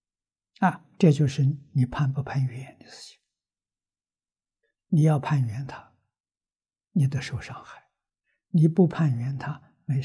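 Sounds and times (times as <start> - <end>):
elderly man speaking: 0.6 - 3.2, 4.9 - 5.9, 7.0 - 7.8, 8.6 - 10.0.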